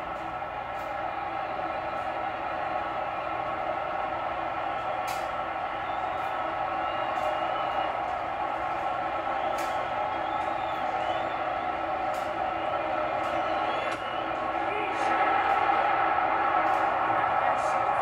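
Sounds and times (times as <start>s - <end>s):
ballpark crowd noise on television: 0.0s - 18.0s.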